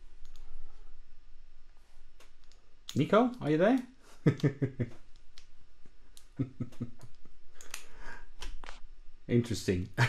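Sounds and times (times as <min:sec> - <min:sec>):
faint clicks: 0:00.2 - 0:00.5
person chuckling softly: 0:04.1 - 0:05.1, 0:06.2 - 0:07.8.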